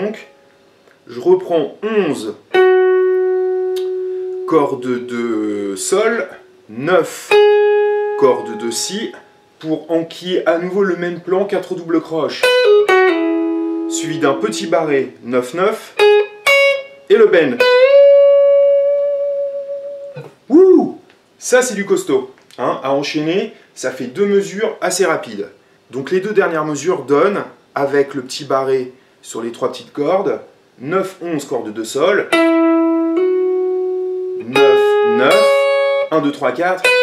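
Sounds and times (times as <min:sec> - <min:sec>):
man calling out: 0:01.1 - 0:02.4, 0:04.5 - 0:07.4, 0:13.9 - 0:16.0, 0:20.5 - 0:21.0, 0:34.4 - 0:36.8
electric guitar single notes: 0:01.8 - 0:09.7, 0:12.4 - 0:15.3, 0:16.0 - 0:20.5, 0:32.3 - 0:37.0
bent electric guitar note: 0:02.5 - 0:06.7, 0:17.6 - 0:20.4.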